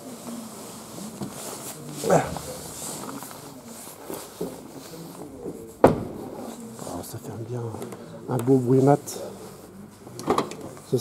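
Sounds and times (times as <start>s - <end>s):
car door shutting with dull thud: 5.8s - 6.2s.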